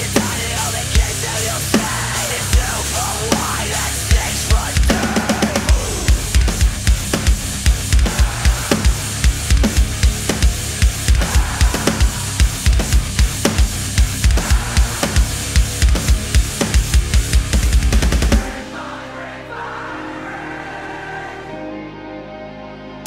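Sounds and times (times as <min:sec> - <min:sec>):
heavy kick drum pulses: 0:00.0 - 0:18.6
electronic drum kit playing: 0:00.0 - 0:18.8
distorted guitar backing track: 0:00.0 - 0:19.2, 0:21.5 - 0:23.0.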